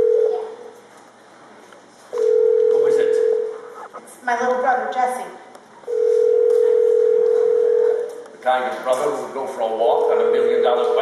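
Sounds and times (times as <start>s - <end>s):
telephone ringing tone: 2.2s - 3.5s, 5.9s - 8.1s, 10.2s - 11.0s.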